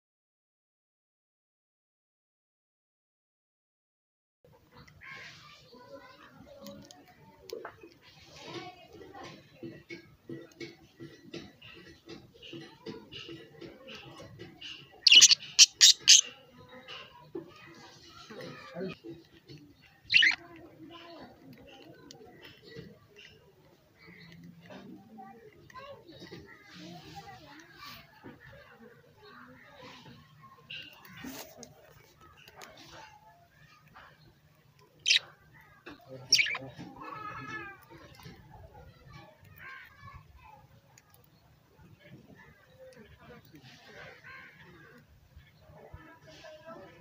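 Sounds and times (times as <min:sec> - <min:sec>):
faint soft bird chatter: 0:04.5 - 0:47.0
budgerigar chirping: 0:15.1 - 0:16.3, 0:20.1 - 0:20.4, 0:35.0 - 0:35.3, 0:36.3 - 0:36.6.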